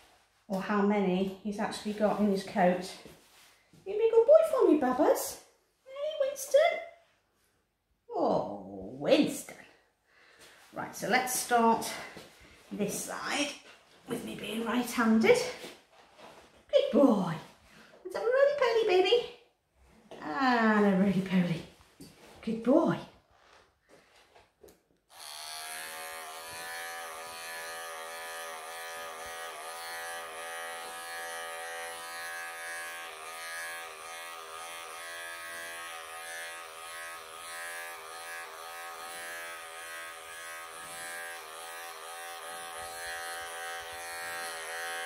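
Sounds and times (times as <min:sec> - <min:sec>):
electric pet clipper buzzing: 0:25.1 - 0:45.0.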